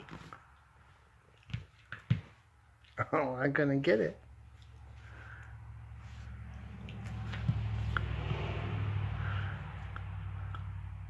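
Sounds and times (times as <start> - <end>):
low steady rumble: 4.3 - 11.0.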